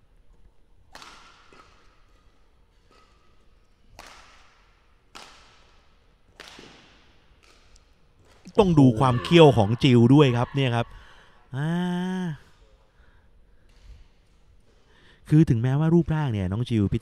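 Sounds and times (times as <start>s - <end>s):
racket hitting shuttlecock: 0.8s - 9.4s.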